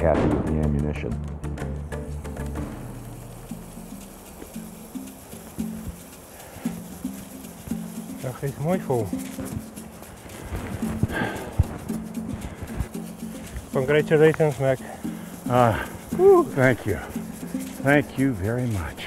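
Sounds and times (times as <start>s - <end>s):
background music: 0.0s - 19.0s
footsteps on sand and grass: 2.6s - 19.0s.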